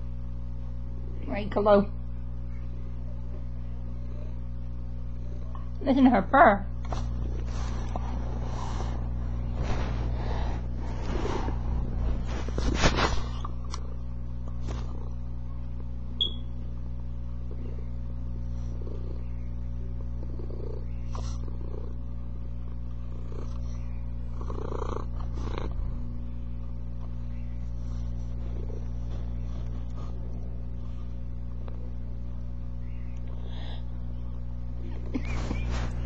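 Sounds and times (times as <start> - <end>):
cat purring: 3.6 - 5.9, 6.8 - 15.4, 17.4 - 32.0
fur rubbing on microphone: 6.9 - 13.7, 35.1 - 36.0.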